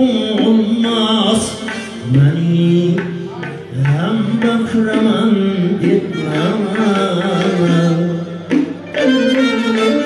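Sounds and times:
man singing: 0.0 - 10.0
accordion: 6.0 - 10.0.

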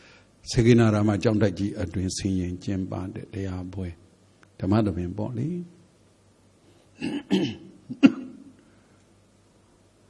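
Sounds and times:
man clearing his throat: 7.0 - 8.5.

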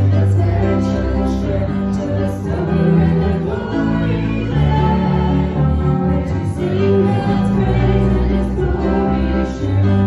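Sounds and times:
woman and man singing a hymn: 0.0 - 10.0.

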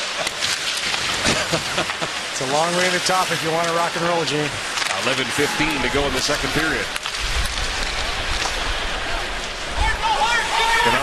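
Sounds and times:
crowd noise hiss: 0.0 - 11.0.

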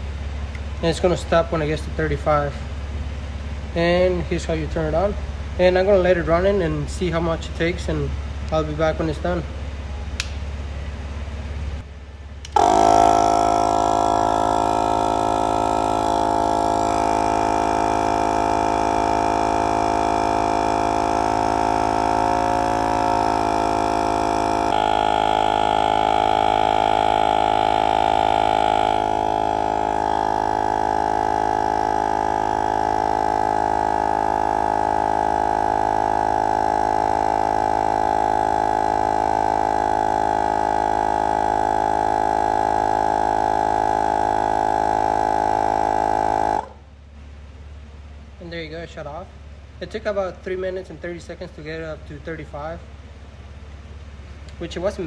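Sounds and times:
electric tire inflator compressor buzzing: 11.8 - 46.9.

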